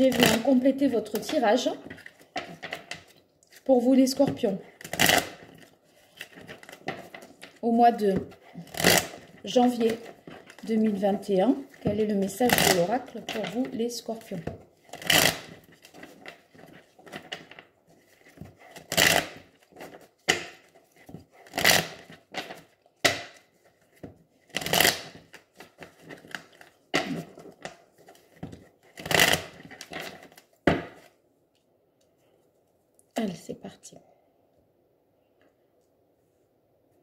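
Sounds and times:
cards being shuffled by hand: 0.0s - 31.2s.

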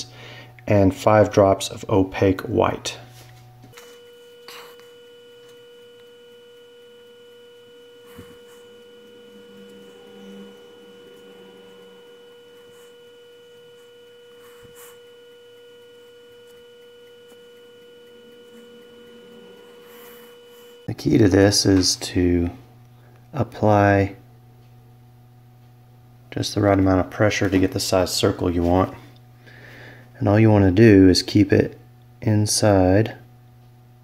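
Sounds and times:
faint electrical hum: 0.0s - 34.0s.

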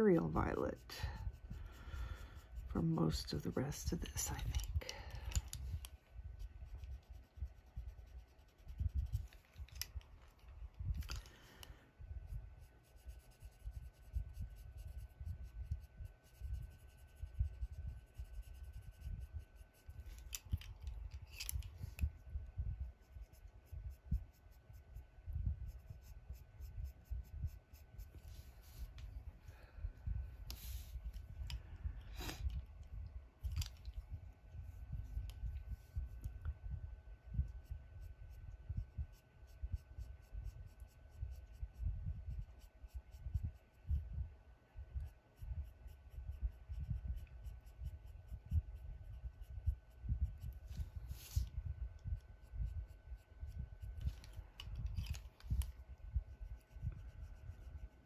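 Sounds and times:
pencils scratching on paper: 0.0s - 29.2s, 37.4s - 43.9s, 45.0s - 58.0s
hand rubbing on paper: 0.0s - 36.4s, 37.4s - 44.0s, 45.0s - 58.0s
faint steady whine: 0.0s - 58.0s.

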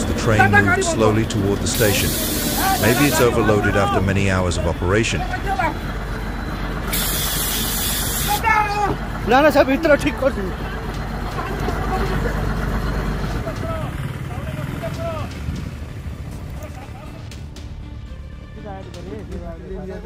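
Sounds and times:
low rumble of moving train: 0.0s - 20.0s
sharp hiss: 1.7s - 3.2s, 6.9s - 8.4s
people shouting: 2.2s - 4.2s, 8.2s - 9.0s.

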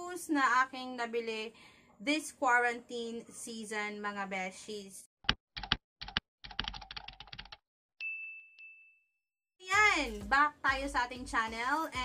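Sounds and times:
computer keyboard typing: 5.3s - 7.6s.

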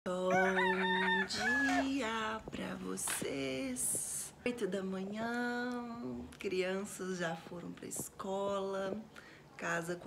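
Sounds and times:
woman singing a drawn-out call: 0.1s - 4.0s.

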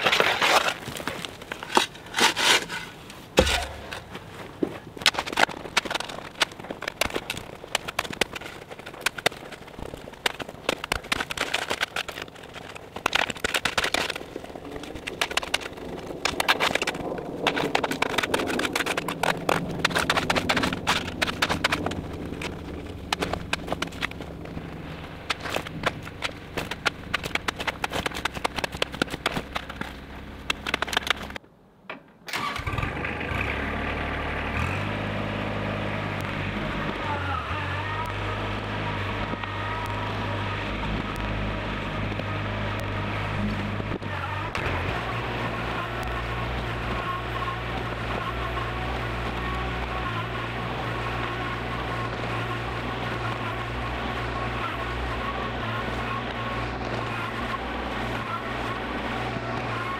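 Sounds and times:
shovel digging into gravelly soil: 0.0s - 4.3s
dirt being thrown: 0.0s - 31.4s
low steady drone: 14.3s - 27.4s.

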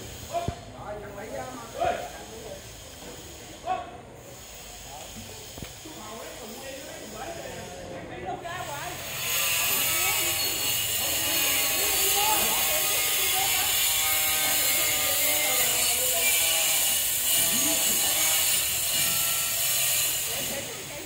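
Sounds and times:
faint voices: 0.0s - 19.4s.

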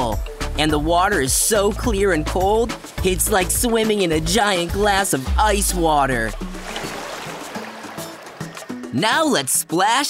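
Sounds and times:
background music: 0.0s - 10.0s
watery splashing: 1.0s - 9.0s.

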